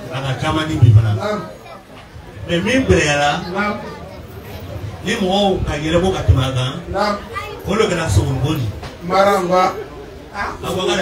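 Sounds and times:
man talking into a microphone: 0.0s - 1.6s, 2.3s - 4.1s, 4.8s - 11.0s.

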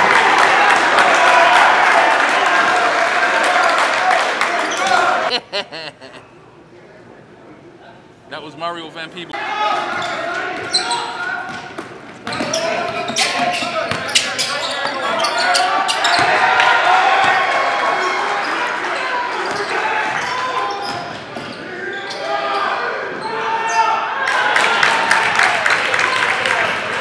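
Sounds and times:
voices in a hall: 0.0s - 27.0s
shoe squeaks: 10.0s - 11.2s, 12.2s - 16.3s.

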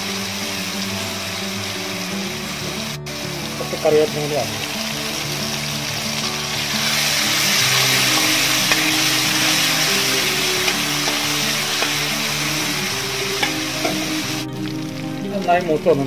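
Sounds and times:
background music: 0.0s - 16.0s
hot oil sizzling in a pan: 0.0s - 16.0s.

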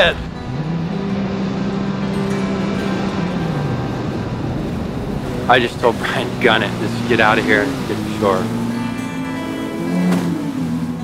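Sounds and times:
jet ski engine revving: 0.0s - 11.0s.

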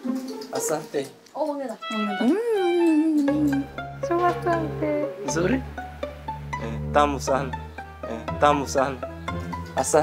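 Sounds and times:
background music with low bass: 1.8s - 10.0s.

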